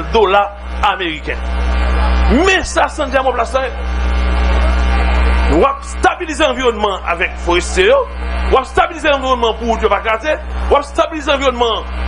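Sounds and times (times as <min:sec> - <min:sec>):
man speaking: 0:00.0 - 0:01.4, 0:02.3 - 0:03.8, 0:05.5 - 0:11.9
loud low electrical hum: 0:00.0 - 0:12.0
steady held tone: 0:00.0 - 0:12.0.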